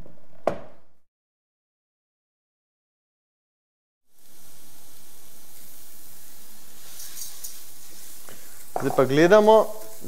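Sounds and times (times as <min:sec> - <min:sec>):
rice and onion sizzling in oil: 0:04.1 - 0:10.0.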